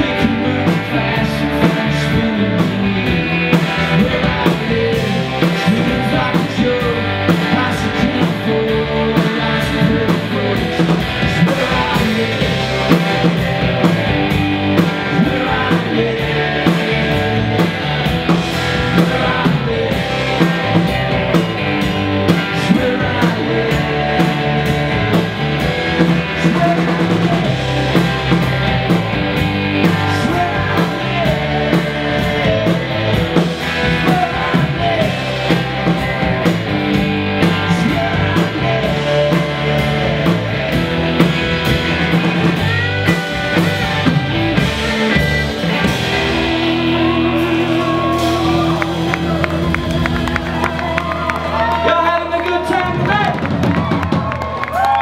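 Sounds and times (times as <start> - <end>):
live rock band playing: 0.0 - 55.0.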